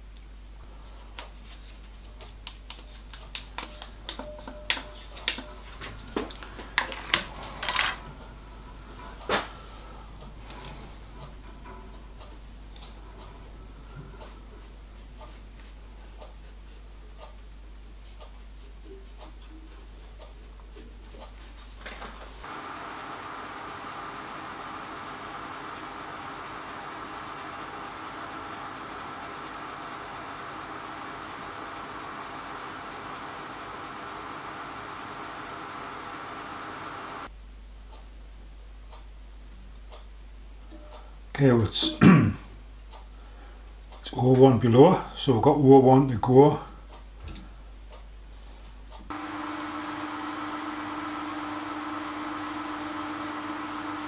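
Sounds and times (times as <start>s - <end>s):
lathe motor hum: 22.4s - 37.3s, 49.1s - 54.0s.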